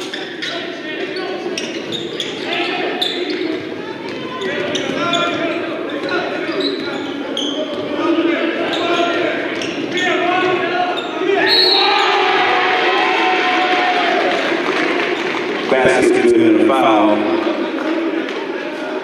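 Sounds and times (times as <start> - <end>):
voices echoing in gym: 0.0 - 19.0.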